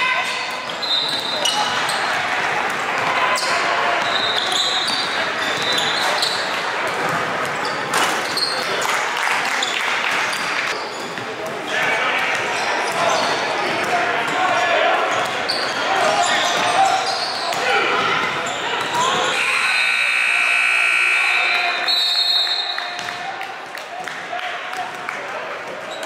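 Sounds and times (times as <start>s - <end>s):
echoing voices: 11.3s - 25.7s.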